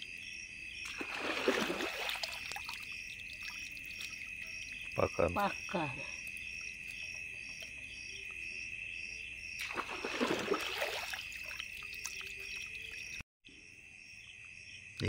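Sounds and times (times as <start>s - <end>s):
crickets trilling: 0.0s - 15.0s
pulsing insect call: 0.0s - 15.0s
hand sloshing through muddy water: 0.8s - 4.8s, 9.6s - 13.1s.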